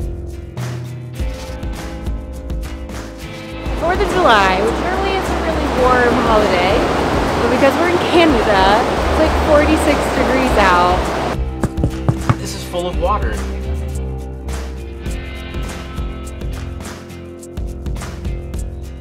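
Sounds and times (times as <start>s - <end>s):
background music: 0.0s - 19.0s
rushing water: 3.6s - 12.8s
woman speaking lively: 3.8s - 6.8s, 7.4s - 11.0s.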